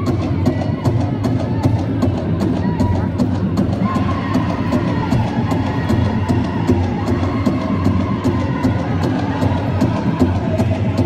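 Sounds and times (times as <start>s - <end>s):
big drum steady beat: 0.0s - 11.0s.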